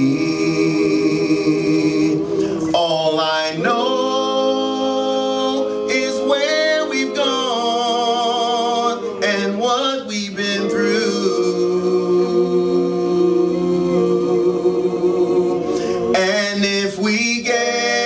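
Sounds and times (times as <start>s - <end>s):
male vocal quartet singing: 0.0s - 18.0s.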